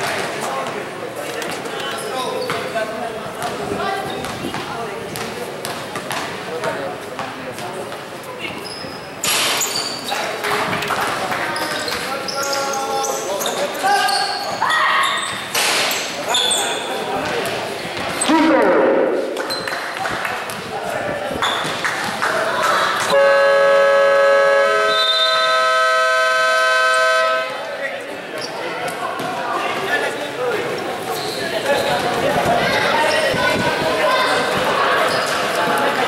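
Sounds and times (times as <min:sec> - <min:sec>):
scoreboard buzzer: 0:23.2 - 0:27.5
voices: 0:26.7 - 0:36.0.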